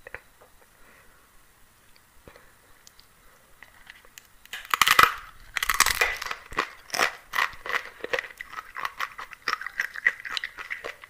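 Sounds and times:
crunching tortilla chip: 0:04.5 - 0:11.0.

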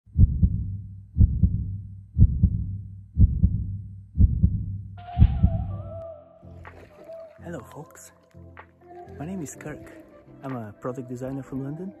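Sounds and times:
deep heartbeat thumps: 0:00.1 - 0:06.0.

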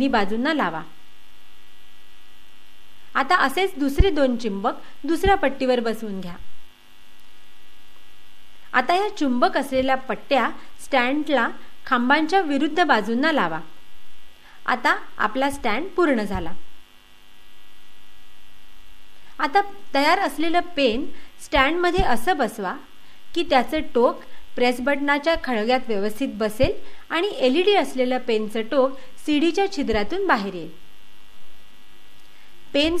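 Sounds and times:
electrical mains hum: 0:00.0 - 0:33.0.

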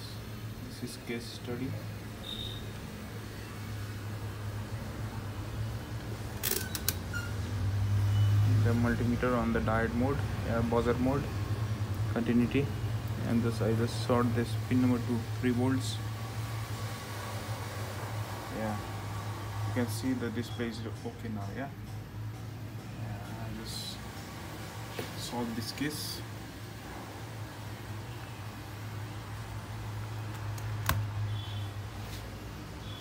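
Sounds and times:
low electrical hum: 0:00.0 - 0:33.0.

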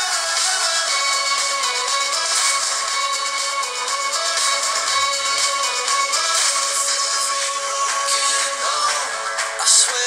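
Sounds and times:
music through phone loudspeaker: 0:00.0 - 0:10.0.

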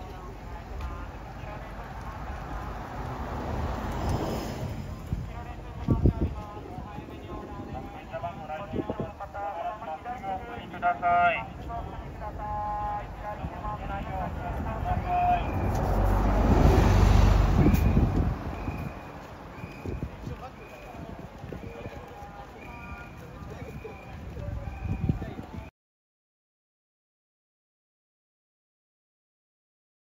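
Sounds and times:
bus passing by: 0:00.0 - 0:07.8, 0:10.8 - 0:25.0
short high beeps: 0:17.6 - 0:19.8.

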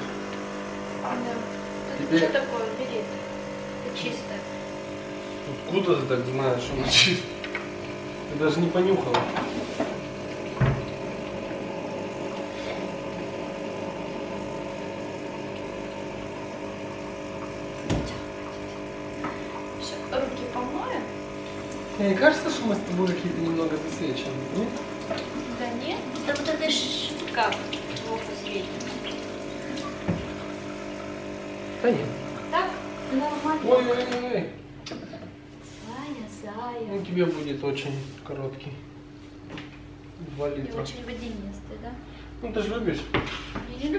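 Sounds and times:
espresso machine pump buzzing: 0:00.0 - 0:43.9
mechanical hum: 0:00.0 - 0:43.9.

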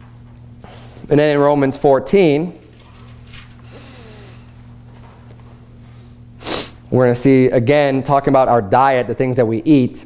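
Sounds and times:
sharp breath through nose: 0:03.6 - 0:04.5, 0:05.8 - 0:06.8.

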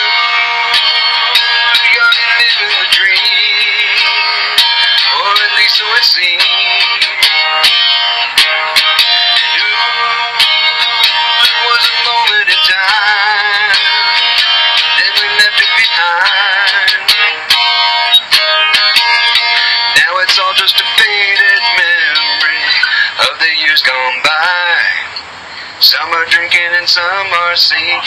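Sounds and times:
strummed guitar with wavering melody: 0:00.0 - 0:28.0.

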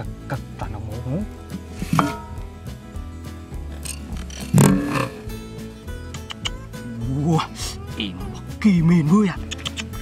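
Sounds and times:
background music with low beat: 0:00.0 - 0:10.0.

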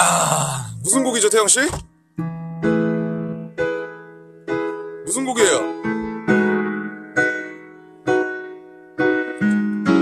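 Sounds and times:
slow piano chords: 0:01.8 - 0:10.0.

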